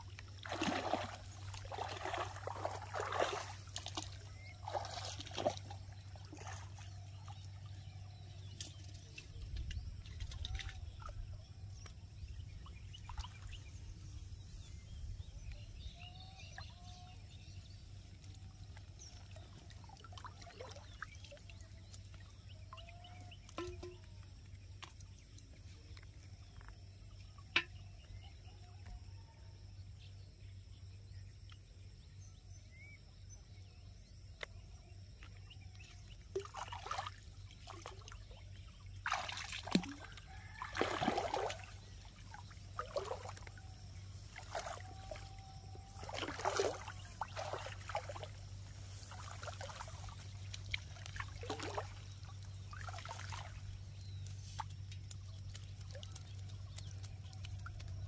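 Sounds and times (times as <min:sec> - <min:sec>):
water splashing and dripping: 0:00.0 - 0:07.8, 0:08.4 - 0:12.0, 0:18.2 - 0:27.8, 0:35.2 - 0:58.0.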